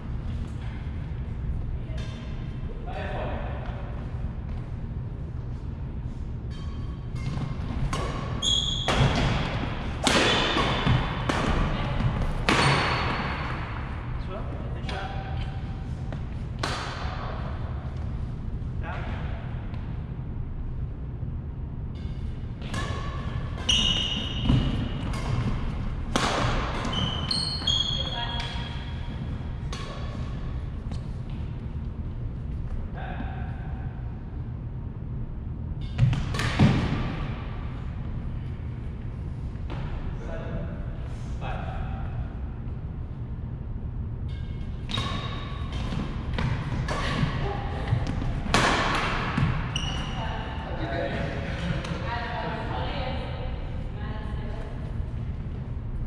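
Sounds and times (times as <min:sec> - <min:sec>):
low steady hum: 0:00.0 - 0:56.0
sneakers squeaking on gym floor: 0:06.4 - 0:13.6, 0:22.0 - 0:31.5, 0:35.7 - 0:37.3, 0:44.3 - 0:50.7
rackets hitting shuttlecock: 0:06.6 - 0:13.6, 0:16.5 - 0:17.3, 0:22.0 - 0:28.9, 0:35.8 - 0:37.5, 0:44.2 - 0:49.9.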